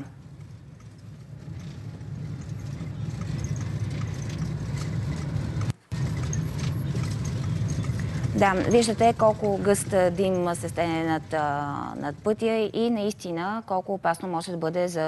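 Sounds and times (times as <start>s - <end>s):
car road and engine rumble: 0.0s - 12.3s.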